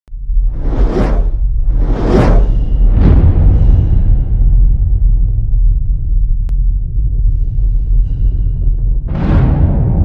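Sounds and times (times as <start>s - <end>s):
deep rumble: 0.1s - 10.0s
whooshes: 0.4s - 5.0s.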